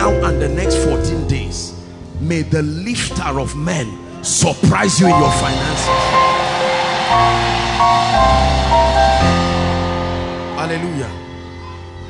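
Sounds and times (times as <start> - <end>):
keyboard sustained chords: 0.0 - 12.0.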